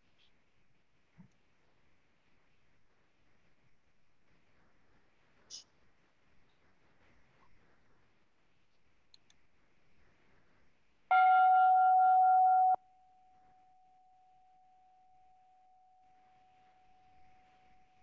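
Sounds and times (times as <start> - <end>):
bell ringing: 11.1 - 12.8.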